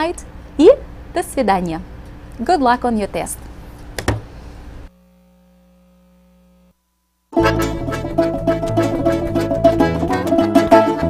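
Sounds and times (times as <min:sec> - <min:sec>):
faint mains hum: 0:00.0 - 0:07.4.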